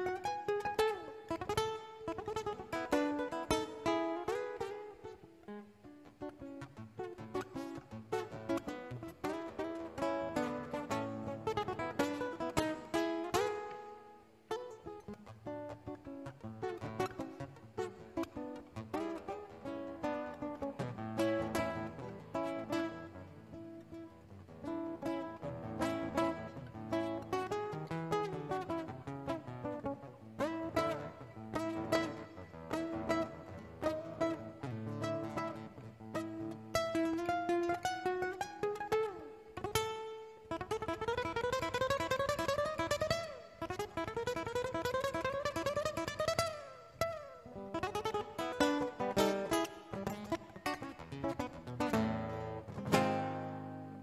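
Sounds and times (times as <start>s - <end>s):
classical guitar fingerstyle: 0.0s - 54.0s.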